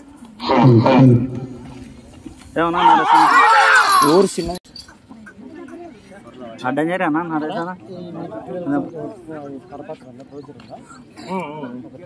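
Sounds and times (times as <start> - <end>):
men talking and calling out: 0.3 - 12.0.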